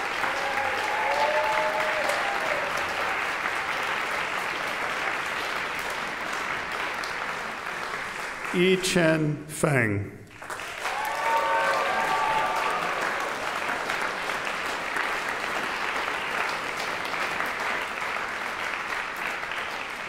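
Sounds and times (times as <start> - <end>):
audience applauding: 0.0 - 9.3, 10.3 - 20.0.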